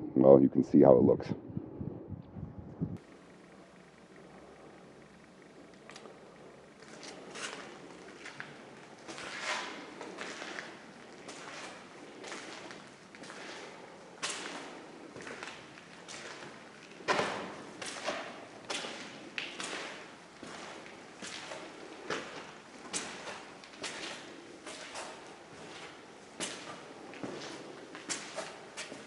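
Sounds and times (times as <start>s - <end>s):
footsteps on concrete floor: 6.8s - 29.0s.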